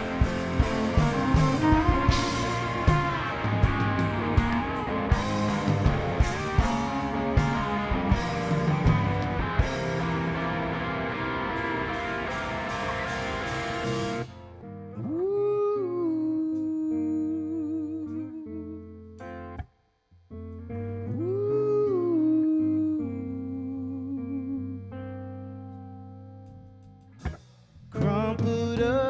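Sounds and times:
rock band playing: 0.0s - 14.5s
low sustained bass notes: 0.0s - 16.2s.

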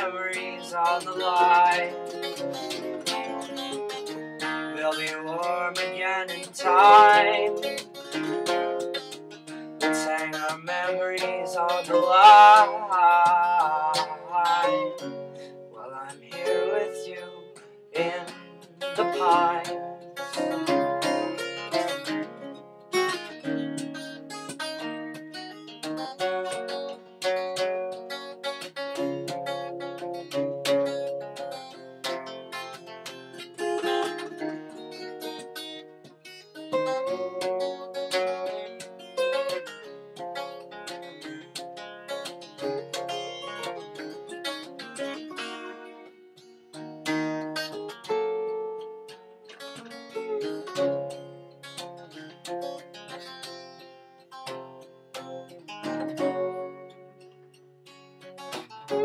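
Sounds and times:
acoustic guitar playing: 0.0s - 59.0s.

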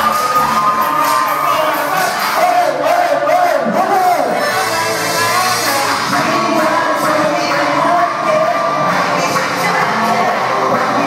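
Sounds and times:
audience cheering and shouting: 0.0s - 11.0s.

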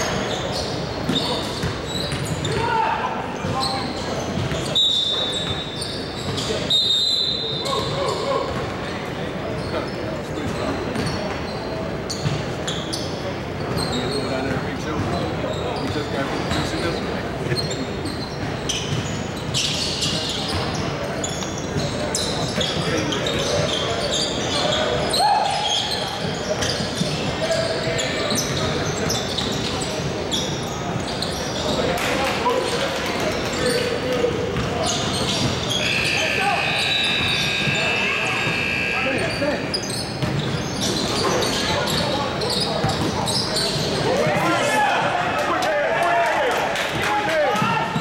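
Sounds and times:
players' voices: 0.0s - 48.0s.

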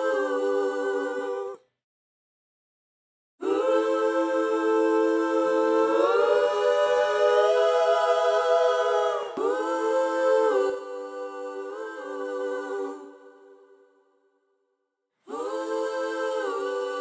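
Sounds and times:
vocal harmonies: 0.0s - 1.8s, 3.4s - 14.2s, 15.2s - 17.0s.

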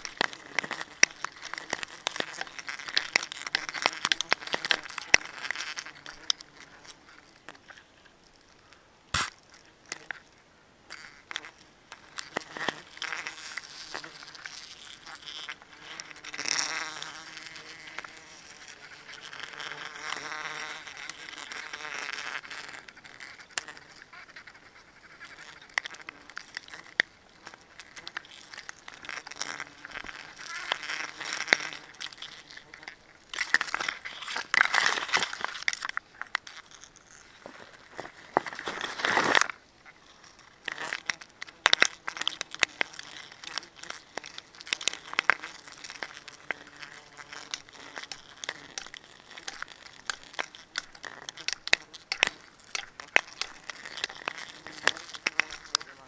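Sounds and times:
sack rustling and scraping: 37.1s - 39.6s.

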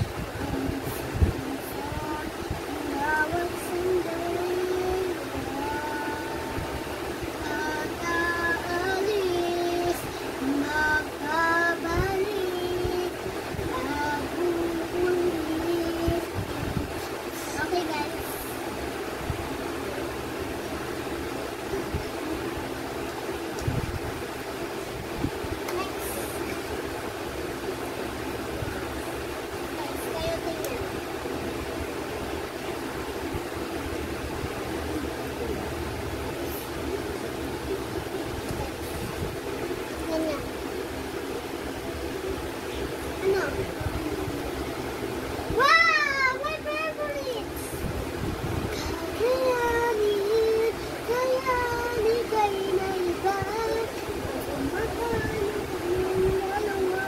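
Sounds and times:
girl singing wordless tune: 0.0s - 35.4s, 36.0s - 57.0s
steady background hum: 0.0s - 57.0s.

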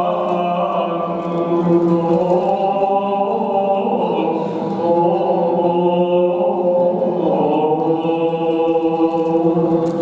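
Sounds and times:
voices singing a carol: 0.0s - 10.0s.

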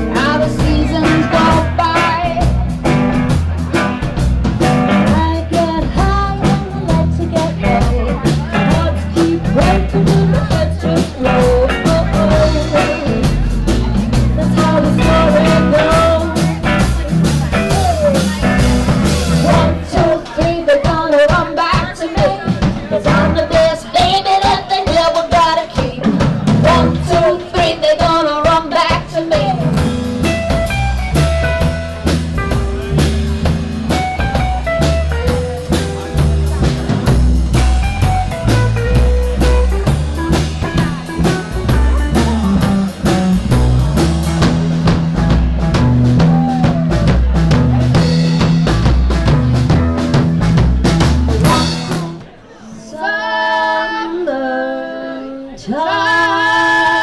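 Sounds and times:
woman singing: 0.0s - 2.8s, 4.9s - 16.8s, 19.4s - 29.9s, 51.4s - 57.0s
double-bass line: 0.0s - 52.4s
drum kit: 0.0s - 52.4s
blues-rock band playing: 0.0s - 52.5s.

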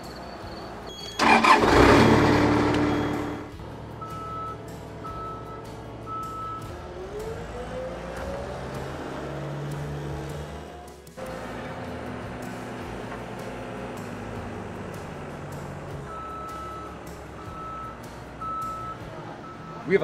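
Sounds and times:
diesel engine starting and running: 0.0s - 20.0s
short beeps: 2.8s - 3.4s.

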